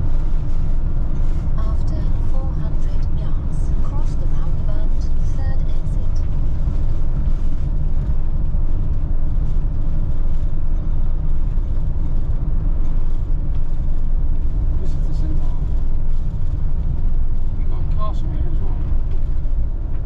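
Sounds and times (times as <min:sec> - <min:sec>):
road and engine rumble in vehicle: 0:00.0 - 0:20.0.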